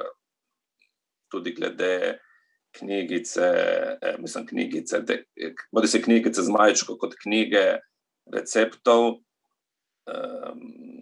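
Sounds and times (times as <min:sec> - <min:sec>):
man speaking over video call: 0:00.0 - 0:11.0.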